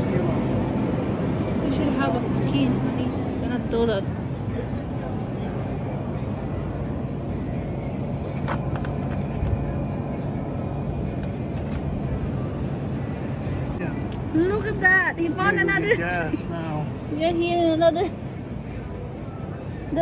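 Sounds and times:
refrigerator low hum: 0:00.0 - 0:14.0.

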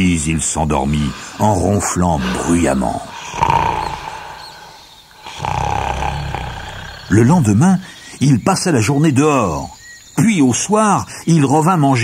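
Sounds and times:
deep rasping snoring: 0:00.7 - 0:07.6.

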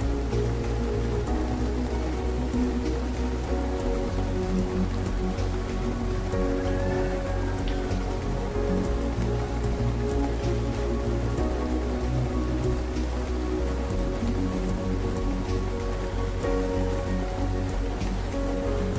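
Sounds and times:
slow calm music: 0:00.0 - 0:18.9
steady rain falling: 0:00.0 - 0:18.9.

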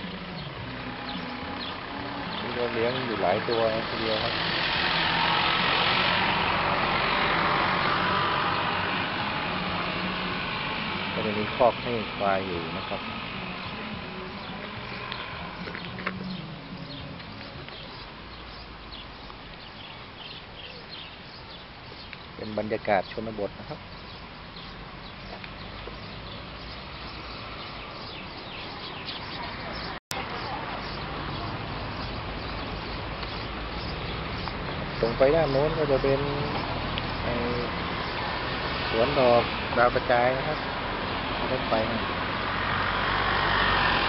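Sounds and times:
vehicle engine running: 0:00.0 - 0:19.0.

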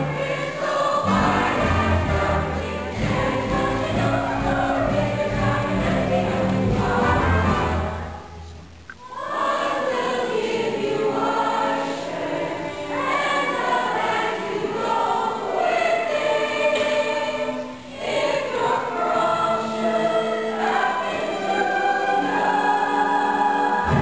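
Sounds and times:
chorus singing: 0:00.0 - 0:24.0.

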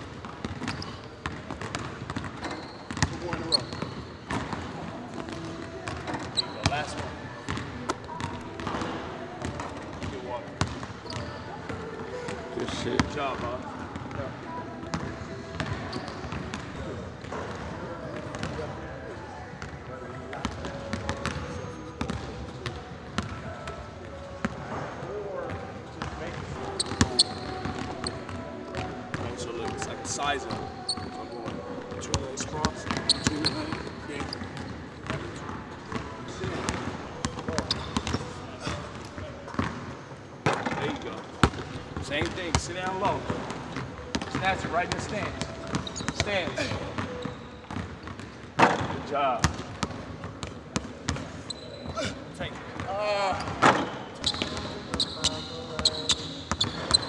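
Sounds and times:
basketball bouncing on hardwood floor: 0:00.2 - 0:06.0.

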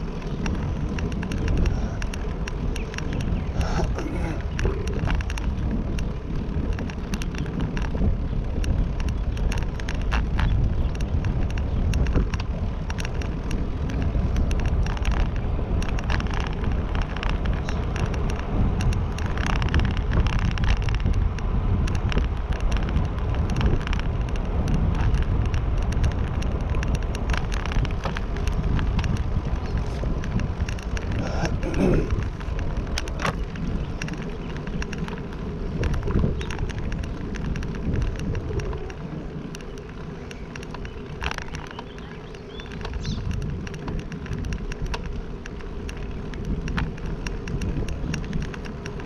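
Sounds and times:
small clicks and rattles: 0:00.0 - 0:49.0
wind buffeting microphone: 0:00.0 - 0:49.0.

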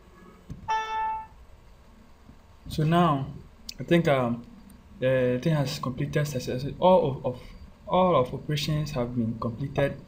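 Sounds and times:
computer alert chime: 0:00.7 - 0:01.4.

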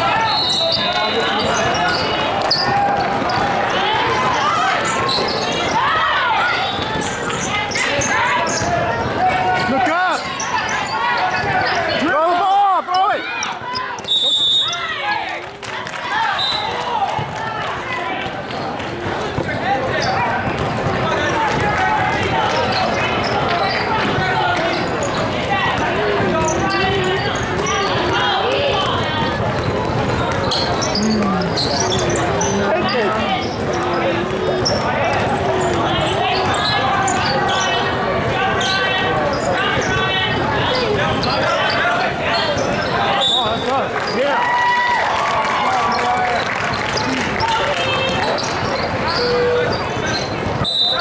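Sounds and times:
people calling out and chattering: 0:00.0 - 0:51.0
basketball bouncing on court: 0:18.1 - 0:41.4.

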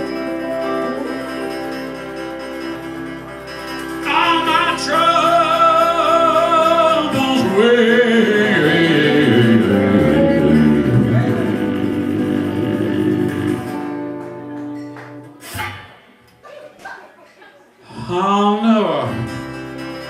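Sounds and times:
country band playing: 0:00.0 - 0:16.2, 0:18.3 - 0:20.0.

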